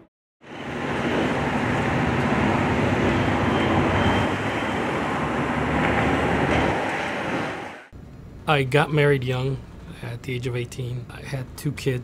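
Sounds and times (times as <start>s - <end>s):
heavy street traffic rumble: 0.4s - 12.0s.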